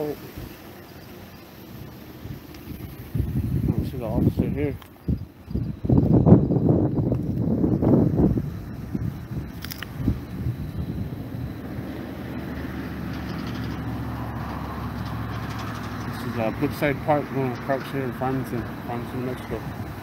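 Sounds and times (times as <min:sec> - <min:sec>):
car engine idling hum: 0:00.0 - 0:20.0.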